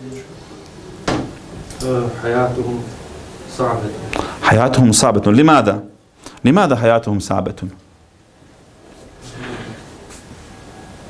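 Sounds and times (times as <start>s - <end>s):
man speaking: 1.8s - 7.8s
quiet voices: 9.2s - 9.9s.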